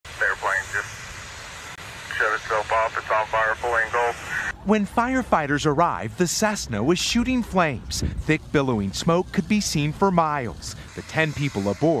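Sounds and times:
radio hiss: 0:00.1 - 0:12.0
man's voice over radio: 0:00.2 - 0:00.9, 0:02.1 - 0:04.5, 0:09.4 - 0:12.0.

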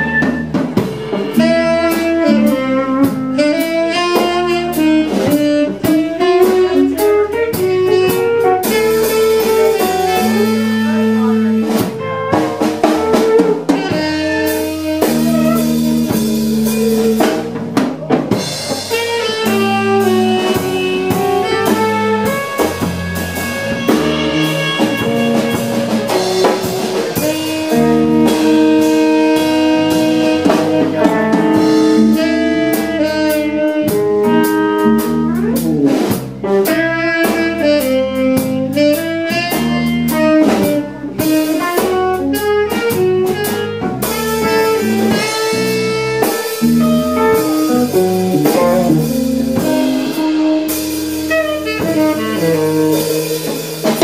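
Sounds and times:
drum kit: 0:00.0 - 0:54.0
electric bass line: 0:00.0 - 0:54.0
saxophone melody: 0:00.0 - 0:54.0.

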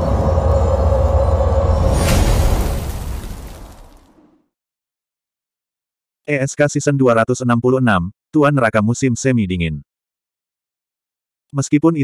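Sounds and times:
mid-pitched drone tone: 0:00.0 - 0:02.2
deep rumble: 0:00.0 - 0:04.2.

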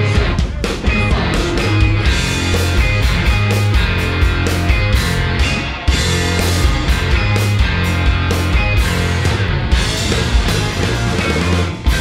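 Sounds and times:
low electric guitar notes: 0:00.9 - 0:12.0.

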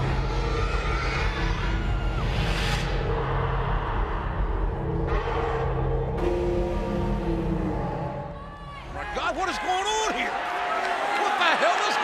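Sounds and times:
ominous wrestling entrance music: 0:00.0 - 0:08.4.

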